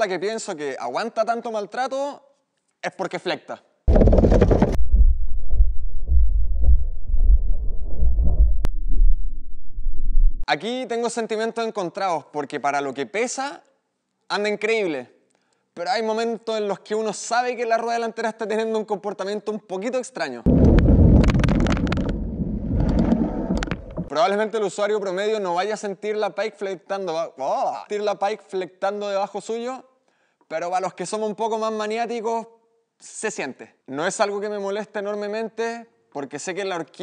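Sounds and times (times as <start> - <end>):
wind rumble on microphone: 3.9 - 10.4, 20.5 - 24.1
bike tyres on gravel: 20.5 - 24.1
wind buffeting microphone: 20.5 - 24.1.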